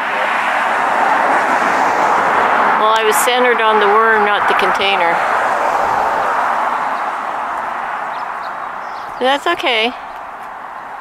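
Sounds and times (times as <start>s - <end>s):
car tyre and road noise: 0.0s - 11.0s.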